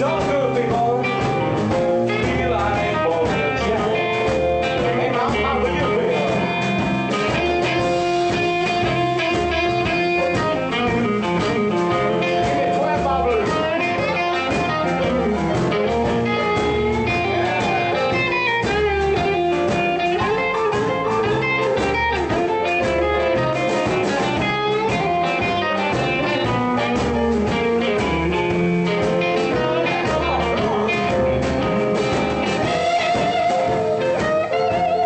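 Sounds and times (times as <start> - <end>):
double bass: 0.0 - 35.0
drums: 0.0 - 35.0
electric guitar: 0.0 - 35.0
stage piano: 0.0 - 35.0.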